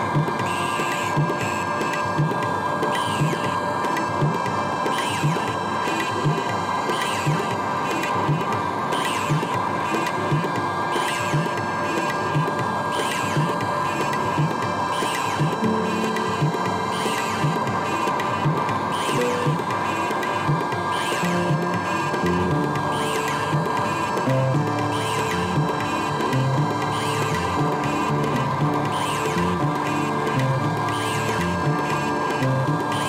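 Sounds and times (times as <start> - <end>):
electronic ambient synthesizer music: 0.0 - 33.0.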